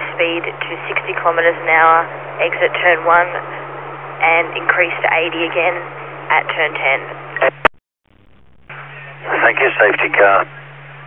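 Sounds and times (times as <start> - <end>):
low hum: 0.0 - 11.0
radio carrier hiss: 8.7 - 10.7.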